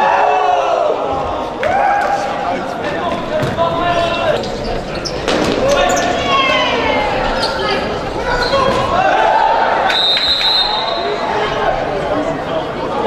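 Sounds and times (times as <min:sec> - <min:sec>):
players shouting: 0:00.0 - 0:13.0.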